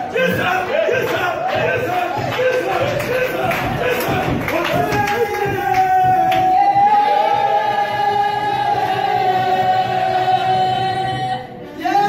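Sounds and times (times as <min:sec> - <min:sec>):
congregation singing: 0:00.0 - 0:12.0.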